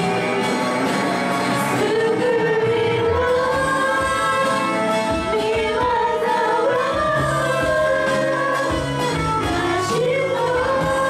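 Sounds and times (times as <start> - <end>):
live band bass and guitar: 0.0 - 11.0
young women singing worship song: 0.0 - 11.0.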